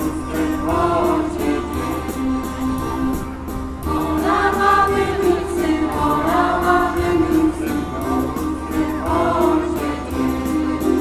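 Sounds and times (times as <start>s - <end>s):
women's choir singing folk song: 0.0s - 3.1s, 3.8s - 11.0s.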